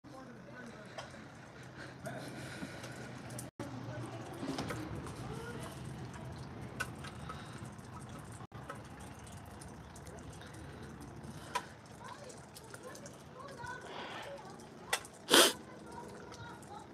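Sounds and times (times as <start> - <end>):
faint indistinct voices: 0.1 - 8.4, 9.2 - 16.9
sleet hissing: 15.3 - 15.6.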